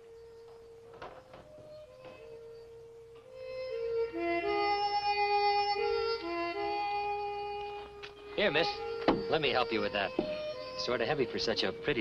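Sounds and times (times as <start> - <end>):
harmonica playing slow tune: 0.0 - 12.0.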